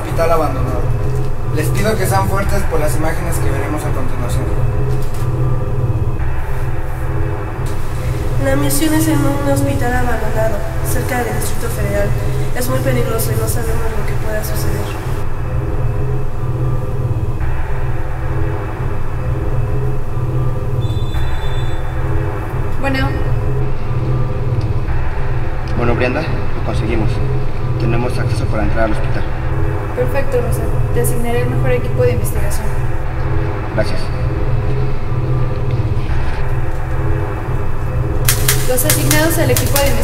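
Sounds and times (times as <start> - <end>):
low rumbling drone: 0.0 - 40.0
sustained shifting notes: 0.0 - 40.0.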